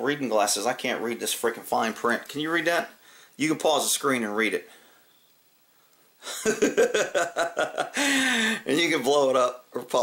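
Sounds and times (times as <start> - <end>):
man laughing: 6.2 - 8.7.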